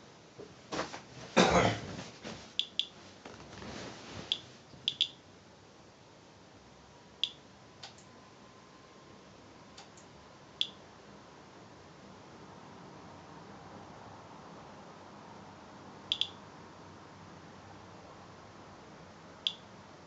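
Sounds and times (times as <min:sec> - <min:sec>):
geiger counter chirps: 0:04.3 - 0:05.2, 0:16.1 - 0:16.4.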